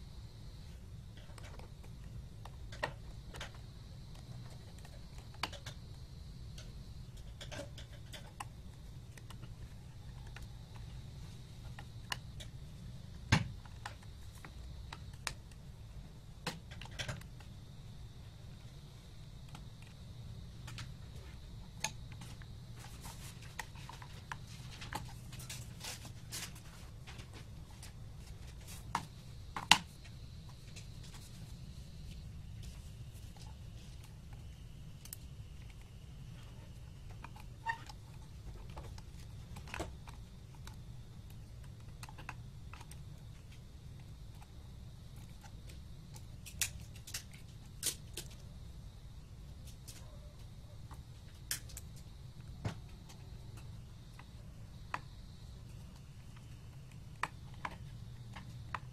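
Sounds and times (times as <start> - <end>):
steady low hum: 0.0 - 58.9.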